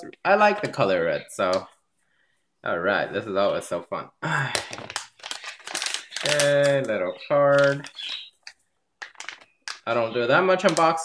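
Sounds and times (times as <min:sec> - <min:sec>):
person sighing: 0:04.2 - 0:05.0
plastic packaging crinkling: 0:04.3 - 0:11.0.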